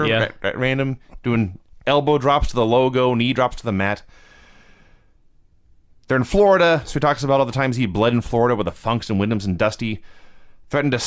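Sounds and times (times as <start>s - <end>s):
breath near a microphone: 4.1s - 5.2s, 10.0s - 10.7s.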